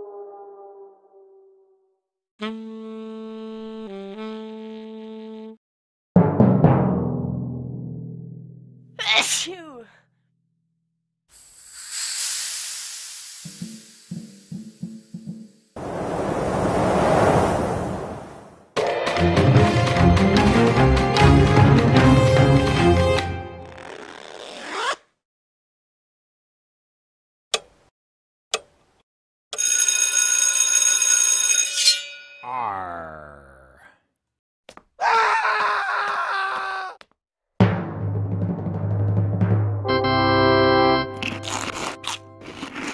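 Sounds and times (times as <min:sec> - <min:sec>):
music: 0:02.4 - 0:05.6, 0:06.2 - 0:08.8, 0:18.8 - 0:23.8, 0:37.6 - 0:42.7
person screaming: 0:09.0 - 0:09.9, 0:32.5 - 0:33.9, 0:35.0 - 0:37.0
rushing wind-like noise: 0:15.8 - 0:18.6.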